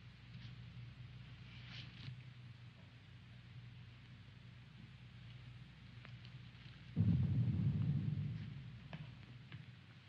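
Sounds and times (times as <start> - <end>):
film soundtrack hum and hiss: 0.0 - 10.0.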